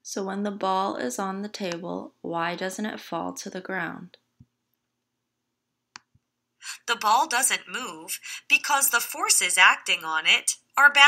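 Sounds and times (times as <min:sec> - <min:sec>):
narrating voice: 0:06.7 - 0:11.0.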